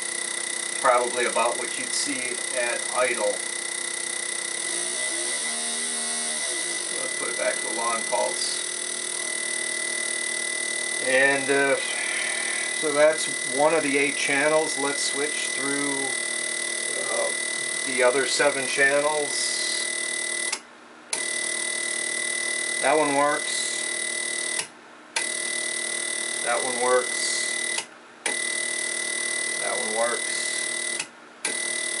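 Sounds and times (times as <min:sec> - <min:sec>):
fuel injector buzzing with whine: 0:00.0 - 0:32.0.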